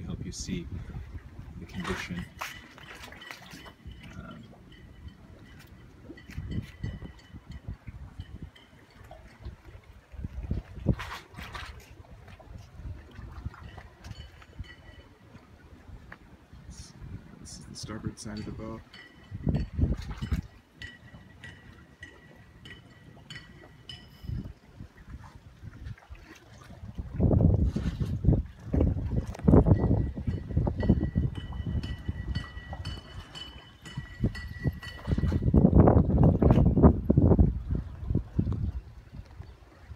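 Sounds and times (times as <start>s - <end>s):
wind buffeting microphone: 0.0s - 39.9s.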